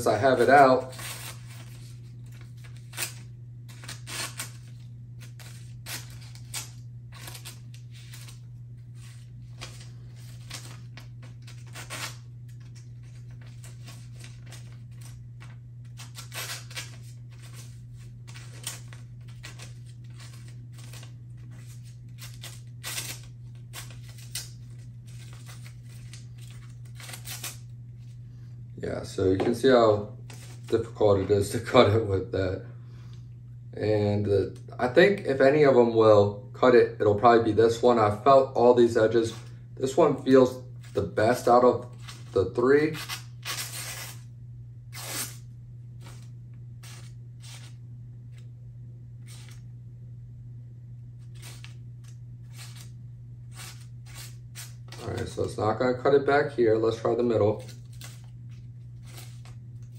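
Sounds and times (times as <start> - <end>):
steady low hum: 0.0 - 59.9
knife tearing paper: 0.2 - 8.4, 9.0 - 27.7, 42.9 - 44.2, 44.9 - 45.4, 46.0 - 47.8, 49.2 - 49.6, 51.2 - 52.9, 53.5 - 55.3, 57.5 - 58.3, 59.0 - 59.9.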